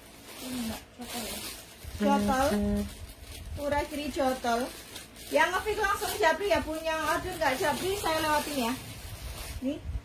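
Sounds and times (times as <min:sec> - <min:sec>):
fabric and hangers rustling: 0:00.0 - 0:09.8.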